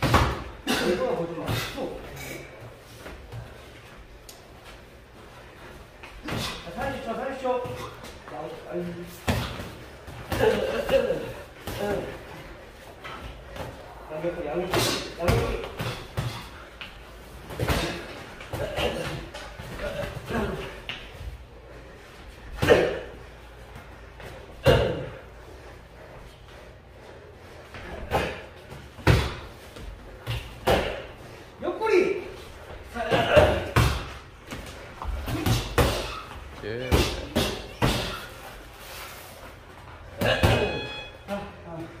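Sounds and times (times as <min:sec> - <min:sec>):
boxers grunting: 0:09.2 - 0:12.5, 0:17.5 - 0:21.0, 0:32.8 - 0:34.2, 0:35.0 - 0:38.4.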